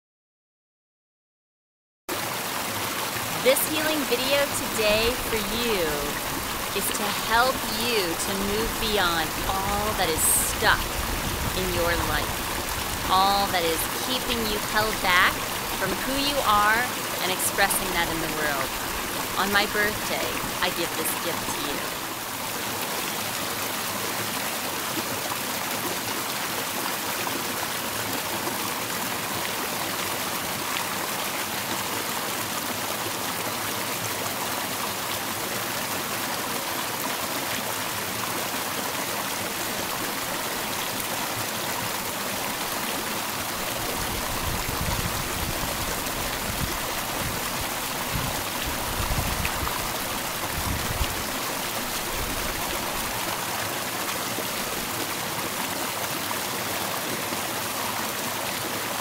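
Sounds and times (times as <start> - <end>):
stream rushing over rocks: 2.1 - 59.0.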